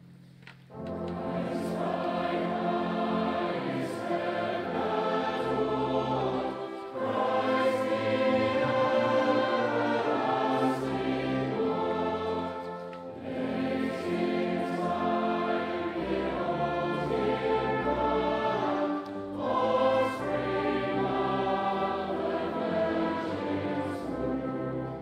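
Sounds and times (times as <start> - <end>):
congregation singing a carol: 0.7 - 25.0
brass band playing: 6.6 - 20.8, 21.5 - 25.0.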